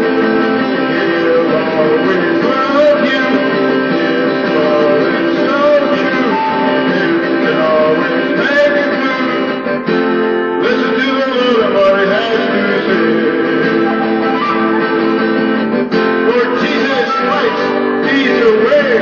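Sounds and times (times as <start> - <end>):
man singing: 0.0 - 15.2, 15.9 - 19.0
acoustic guitar strumming: 0.0 - 19.0
flute melody: 0.0 - 19.0.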